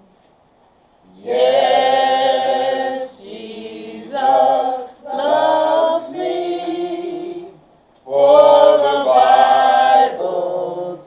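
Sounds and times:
voices singing a hymn: 1.1 - 11.0.

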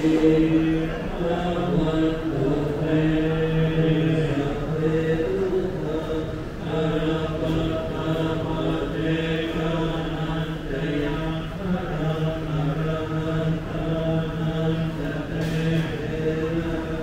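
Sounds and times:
low voices chanting: 0.0 - 17.0.

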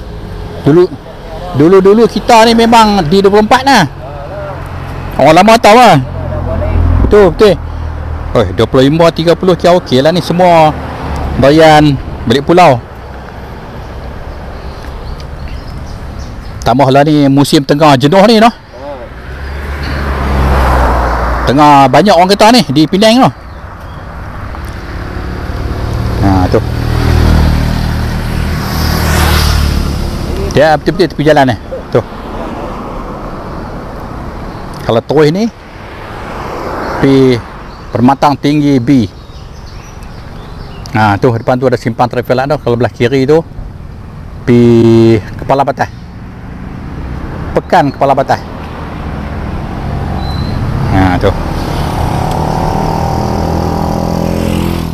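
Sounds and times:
vehicle engine drone passing: 0.0 - 34.8, 42.0 - 54.9.

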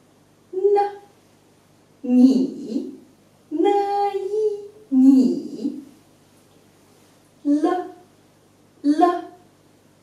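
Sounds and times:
woman speaking a syllable: 0.5 - 1.1, 2.0 - 6.0, 7.4 - 8.1, 8.8 - 9.4.

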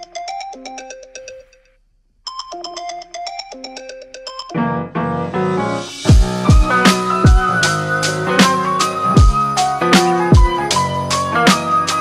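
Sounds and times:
phone alarm chiming melody: 2.3 - 4.8.

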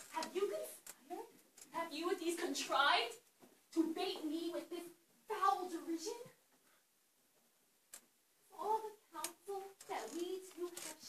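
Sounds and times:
woman speaking: 0.0 - 6.4, 8.5 - 11.0.

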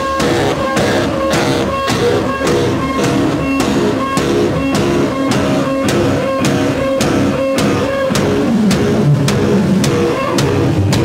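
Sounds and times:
bass guitar: 0.0 - 11.0
drum kit and cymbal hits: 0.0 - 11.0.

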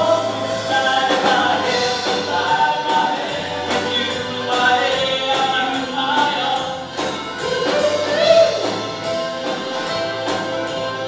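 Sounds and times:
person singing: 0.0 - 9.5
live band playing: 0.0 - 11.0.

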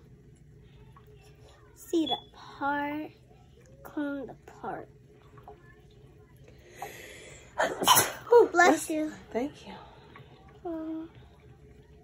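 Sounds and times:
breathy intake: 6.6 - 7.8
person sneezing: 7.6 - 8.3.

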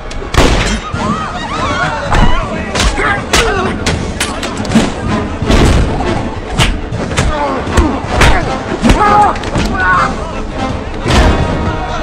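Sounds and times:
men grunting and shouting: 7.1 - 10.5.

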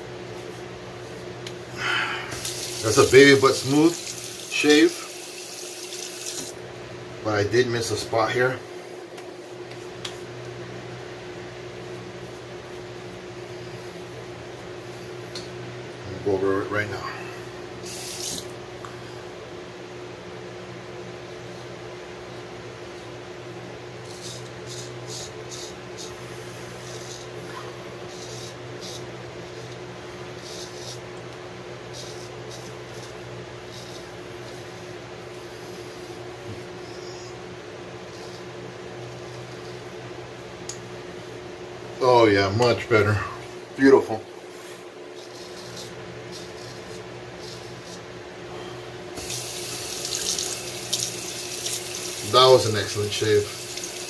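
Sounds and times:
room fan hum: 0.0 - 54.0
razor scraping stubble: 44.6 - 48.1.

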